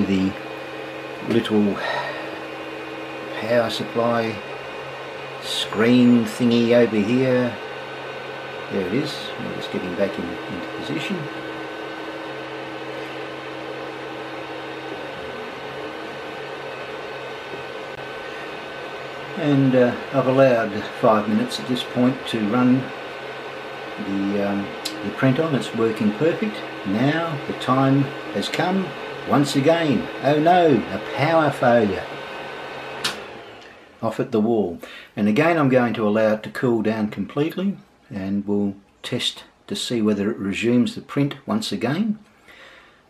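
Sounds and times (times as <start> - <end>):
stepper motors high tone: 0.0 - 33.8
low hum: 0.0 - 34.0
cooling fans whirring: 0.0 - 43.0
power switch click: 33.0 - 33.3.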